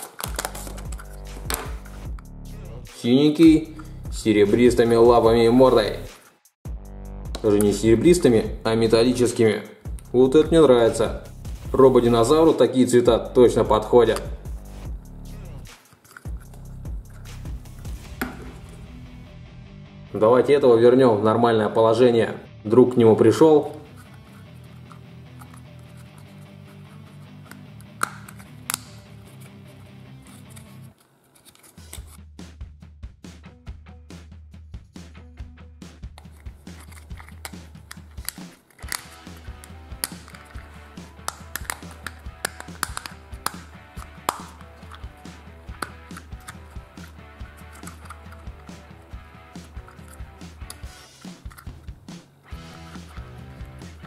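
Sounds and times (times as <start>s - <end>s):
background music with bass line: 0.2s - 20.4s, 31.8s - 54.0s
plastic toy clicks and snaps: 27.5s - 29.0s, 36.2s - 48.9s, 49.6s - 51.8s.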